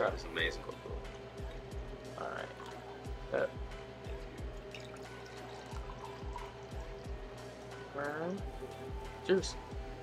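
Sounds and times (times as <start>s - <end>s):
background music with steady beat: 0.0s - 10.0s
wine pouring into glass: 1.0s - 7.2s.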